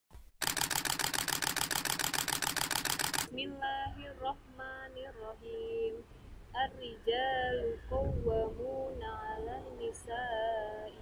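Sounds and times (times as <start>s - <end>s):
rapid mechanical clatter: 0.4s - 3.3s.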